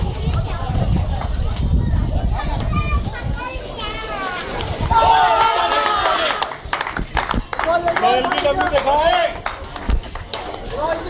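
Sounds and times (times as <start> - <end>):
people shouting and calling out: 1.9 - 6.5.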